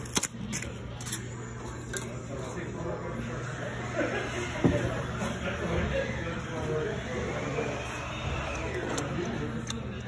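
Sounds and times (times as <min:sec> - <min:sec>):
workshop machinery hum: 0:00.0 - 0:10.0.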